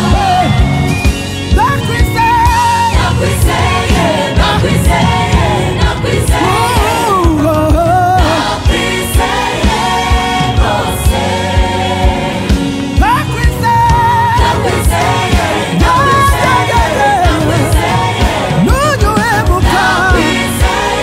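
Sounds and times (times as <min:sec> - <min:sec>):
backing singers: 0:00.0 - 0:21.0
bass guitar: 0:00.0 - 0:21.0
drum kit beat: 0:00.0 - 0:21.0
man singing lead: 0:01.5 - 0:03.1, 0:06.3 - 0:08.4, 0:13.0 - 0:14.6, 0:15.7 - 0:17.9, 0:18.5 - 0:20.6.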